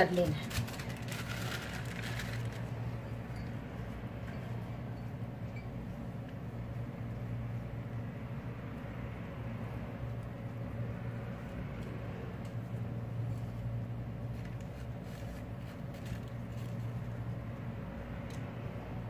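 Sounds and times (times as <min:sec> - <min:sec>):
low mechanical hum with hiss: 0:00.0 - 0:19.0.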